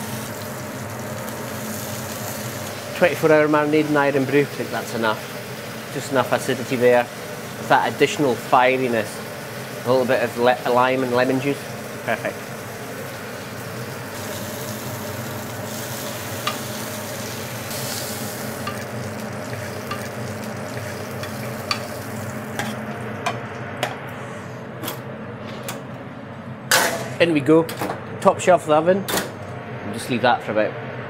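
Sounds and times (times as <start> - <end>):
pork sizzling in a frying pan: 0.0 - 23.3.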